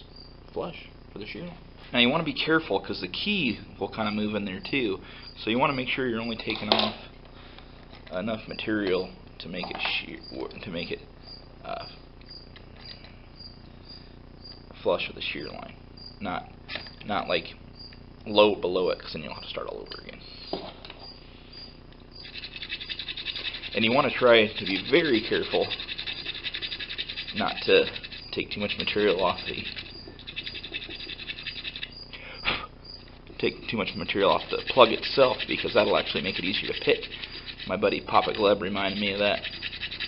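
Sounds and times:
high-pitched chirping: 19.8s - 40.0s
hand file rasping on metal: 22.2s - 32.1s, 33.7s - 40.0s.

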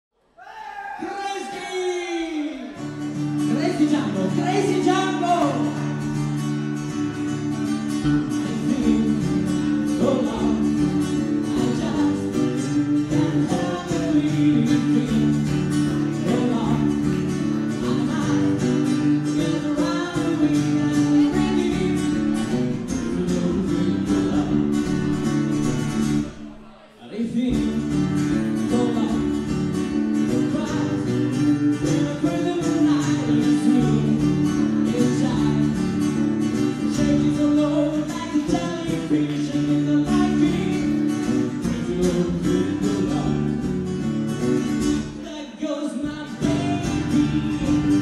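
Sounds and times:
man singing: 0.9s - 44.0s, 44.7s - 48.0s
acoustic guitar: 1.2s - 48.0s
electric bass: 4.2s - 26.6s, 27.5s - 45.1s, 46.3s - 48.0s.

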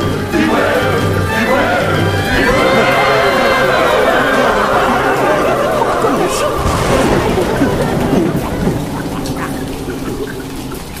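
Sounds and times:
steady rain: 0.0s - 11.0s
water drips: 0.0s - 11.0s.

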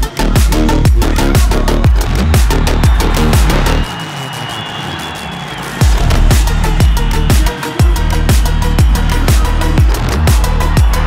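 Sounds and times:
electronic music with heavy kick drum: 0.0s - 11.0s.

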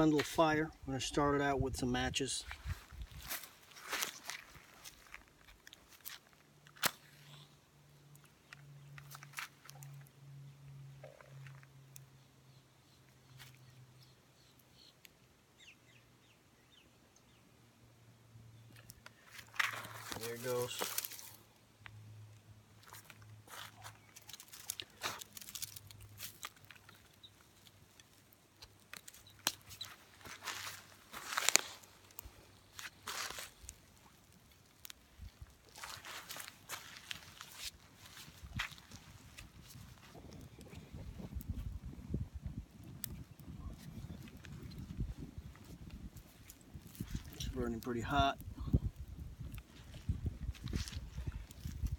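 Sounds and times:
twig fire crackling: 0.0s - 15.4s, 18.5s - 51.9s
twigs snapping and popping: 3.1s - 10.1s, 18.7s - 22.0s, 22.8s - 41.7s, 42.8s - 47.4s, 48.9s - 51.9s
low fire rumble: 24.2s - 51.9s.

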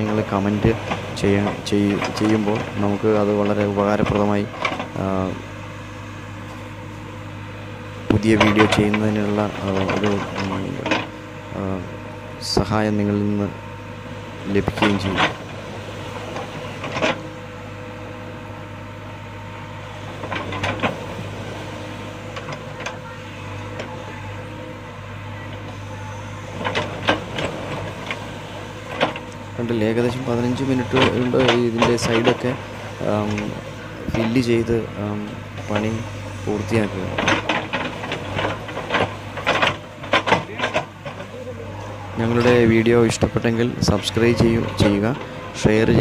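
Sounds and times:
backhoe knocks and clanks: 0.0s - 7.4s, 8.0s - 46.0s
diesel engine running at low revs: 0.0s - 46.0s.

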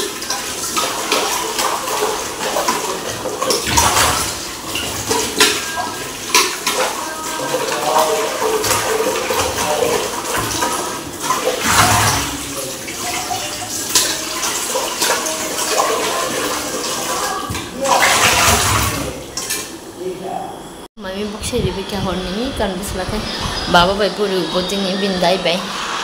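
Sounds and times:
pots and dishes clanking: 0.0s - 19.8s
tap water running and splashing: 0.0s - 19.9s.

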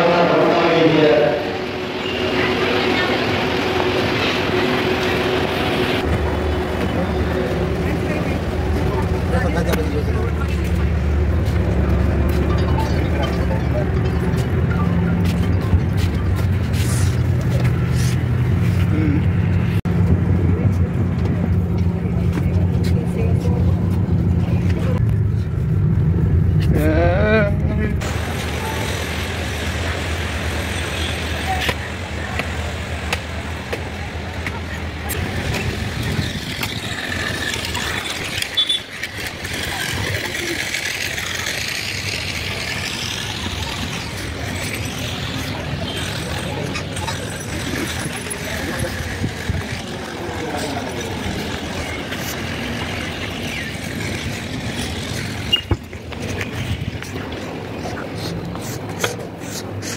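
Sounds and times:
bus engine drone: 0.0s - 59.9s
passenger voices: 0.0s - 59.9s
street traffic noise: 0.0s - 59.9s.

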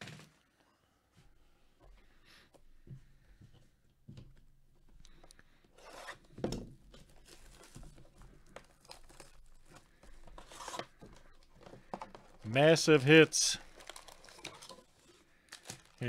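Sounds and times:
plastic shrink wrap tearing: 7.1s - 9.8s, 13.6s - 16.0s.

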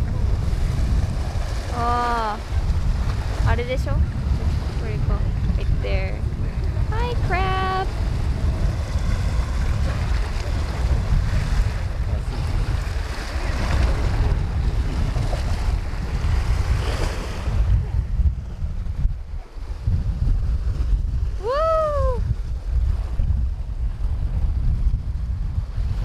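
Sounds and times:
sea waves breaking on rocks: 0.0s - 21.5s
wind buffeting microphone: 0.0s - 26.0s.

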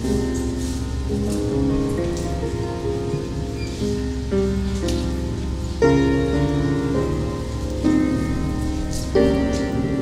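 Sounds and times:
keyboard playing sustained chords: 0.0s - 10.0s.

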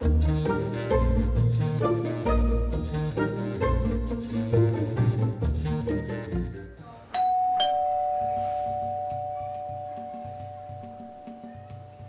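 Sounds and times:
soft background music with beat: 0.0s - 12.0s
two-tone doorbell chime: 7.2s - 11.9s.

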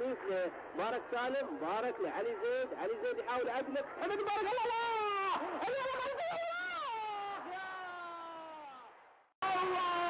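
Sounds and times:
commentator crying out: 4.1s - 8.8s, 9.4s - 10.0s.

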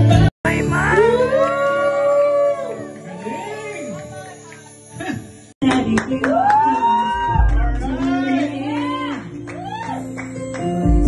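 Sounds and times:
person singing long held note: 0.0s - 3.4s.

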